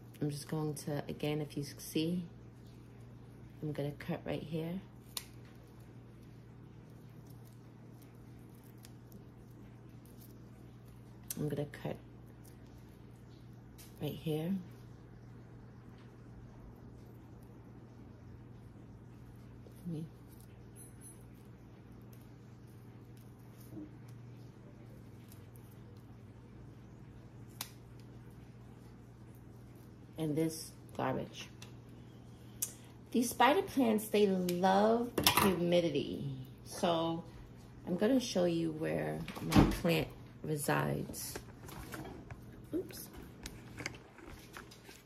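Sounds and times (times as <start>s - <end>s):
low steady room hum: 0.0s - 45.0s.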